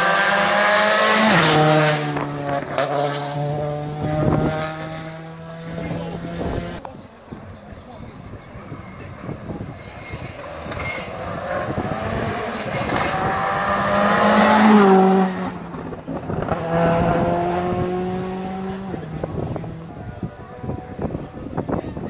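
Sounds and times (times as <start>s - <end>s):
rally car engine revving past: 0.0s - 6.8s, 10.4s - 20.0s.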